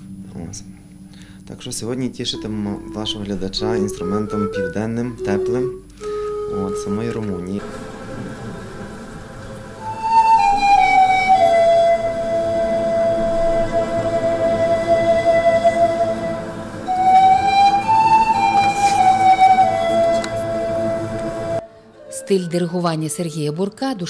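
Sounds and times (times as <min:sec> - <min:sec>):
pan flute melody: 0:02.2 - 0:24.0
string orchestra sustaining: 0:06.5 - 0:21.6.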